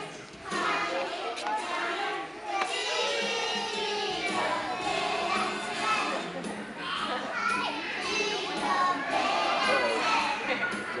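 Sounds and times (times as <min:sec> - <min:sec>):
young children talking and calling out: 0:00.5 - 0:11.0.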